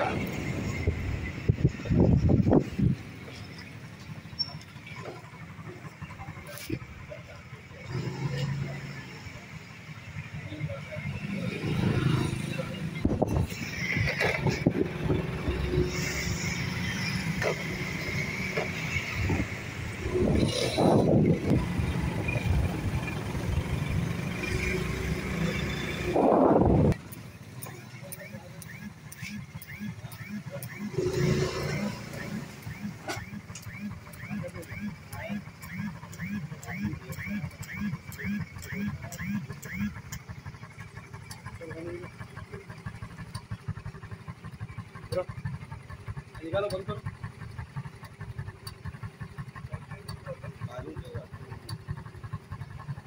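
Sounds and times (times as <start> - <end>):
motorcycle engine idling: 0.0 - 53.0
voices: 0.0 - 53.0
faint chirp: 4.2 - 5.0.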